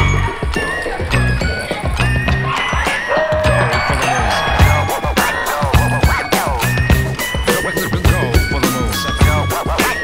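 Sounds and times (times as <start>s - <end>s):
pop music with bass and beat: 0.0s - 10.0s.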